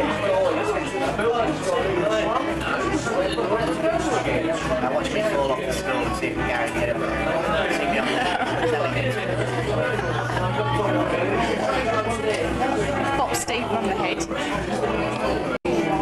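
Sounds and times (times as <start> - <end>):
crowd chatter: 0.0 - 16.0
low background music: 0.0 - 16.0.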